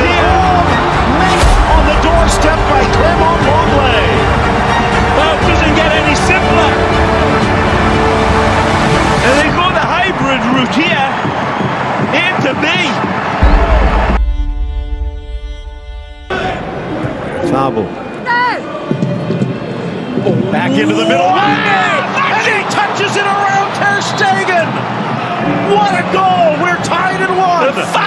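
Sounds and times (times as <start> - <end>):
stadium crowd shouting: 0.0 - 14.5, 16.3 - 28.0
backing music: 0.0 - 18.0
deep bass hit: 0.7 - 5.2, 13.4 - 16.4.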